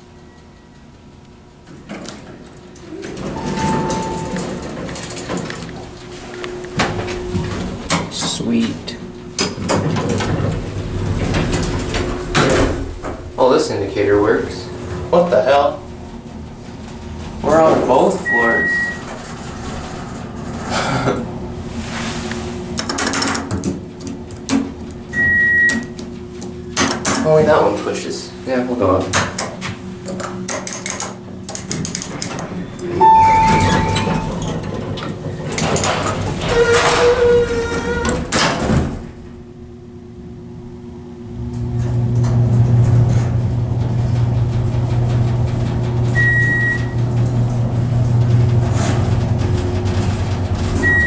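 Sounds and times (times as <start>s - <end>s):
elevator chime beep: 0.1s - 0.8s, 2.9s - 7.6s, 18.2s - 19.2s, 25.1s - 26.0s, 32.8s - 34.6s, 46.1s - 47.1s, 50.8s - 51.0s
elevator doors sliding open: 1.6s - 39.7s, 40.6s - 51.0s
electronic chime tone: 3.0s - 4.7s, 33.0s - 34.4s.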